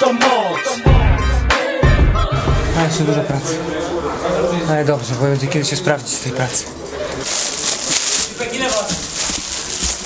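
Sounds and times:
background music: 0:00.0 - 0:04.1.

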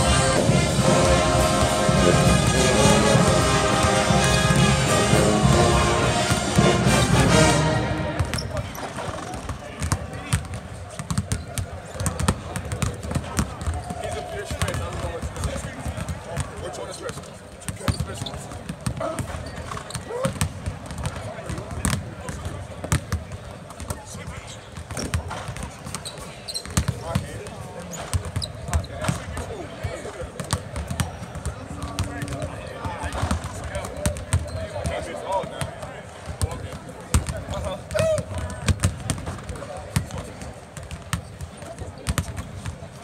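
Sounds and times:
voices chattering: 0:00.0 - 0:20.2
basketballs bouncing on hardwood: 0:09.8 - 0:16.5, 0:17.1 - 0:24.0, 0:30.4 - 0:32.5, 0:36.4 - 0:40.2, 0:40.8 - 0:42.8.

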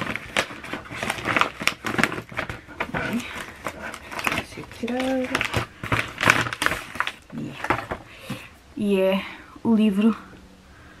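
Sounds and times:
paper envelope crinkling: 0:00.0 - 0:08.5.

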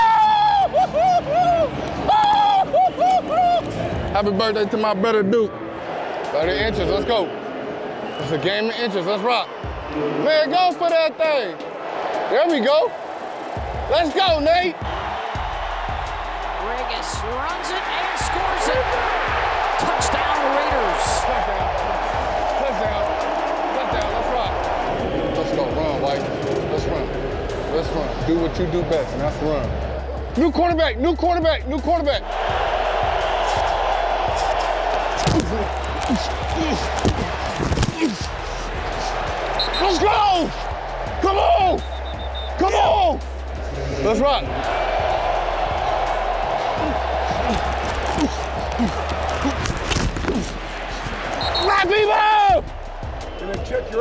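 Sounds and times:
stadium crowd cheering: 0:00.0 - 0:54.0.

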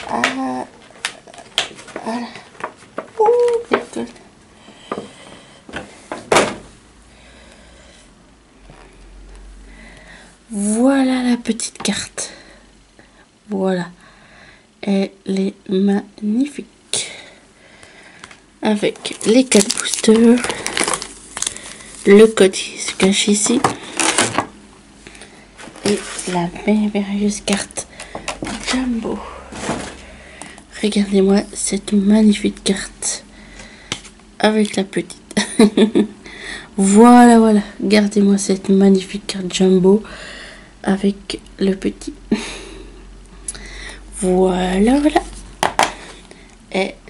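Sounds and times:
plastic crackling: 0:18.2 - 0:24.6
plastic packaging crinkling: 0:18.8 - 0:24.5.

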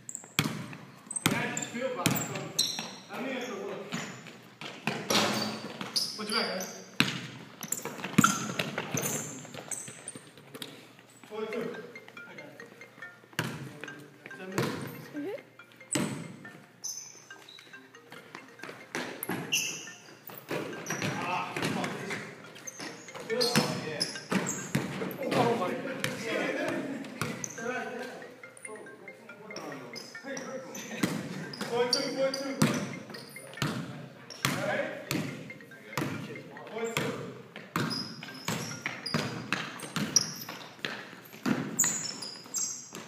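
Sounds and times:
sneakers squeaking: 0:00.0 - 0:43.0.

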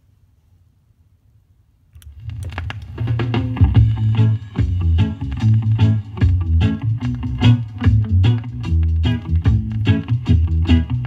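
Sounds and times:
vinyl rumble and ticks: 0:02.0 - 0:11.0
reggae music with heavy bass: 0:03.1 - 0:11.0.

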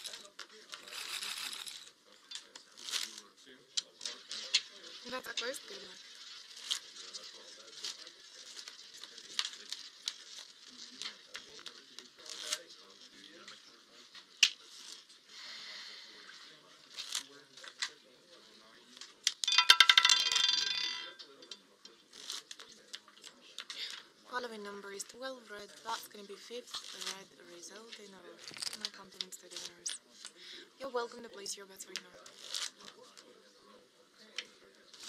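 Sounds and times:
roulette ball rolling and rattling: 0:19.3 - 0:21.3, 0:28.4 - 0:29.9.

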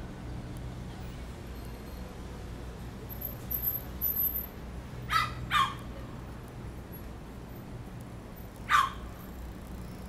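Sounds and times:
low street traffic hum: 0:00.0 - 0:10.0.

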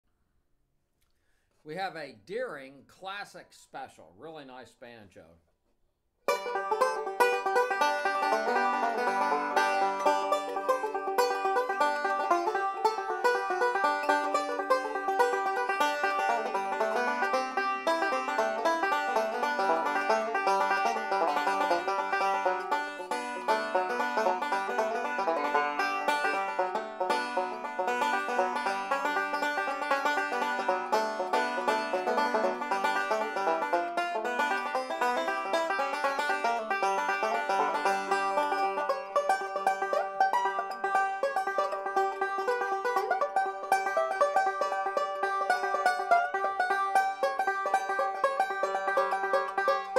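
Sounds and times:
banjo picked fingerstyle: 0:06.2 - 0:49.9.

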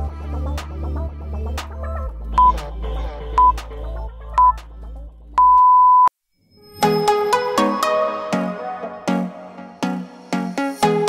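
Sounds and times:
background music: 0:00.0 - 0:05.4, 0:06.6 - 0:11.0
timer beeps: 0:02.4 - 0:02.6, 0:03.4 - 0:03.6, 0:04.4 - 0:04.6, 0:05.4 - 0:06.1.

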